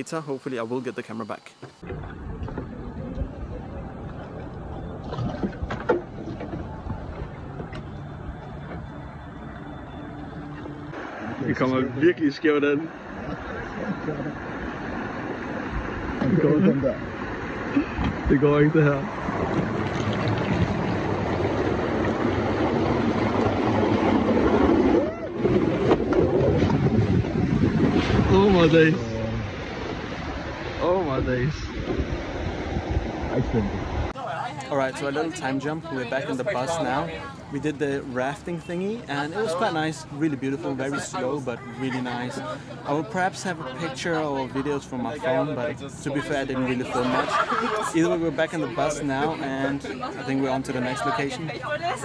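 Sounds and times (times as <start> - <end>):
low outdoor river noise: 0.0 - 52.0.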